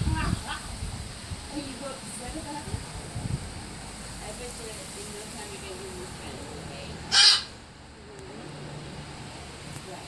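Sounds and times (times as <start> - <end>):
faint outdoor background: 0.0 - 10.0
harsh bird squawk: 7.1 - 7.6.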